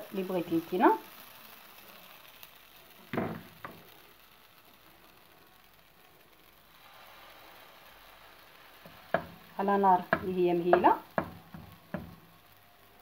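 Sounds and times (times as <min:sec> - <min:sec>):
batter sizzling in frying pan: 0:00.0 - 0:13.0.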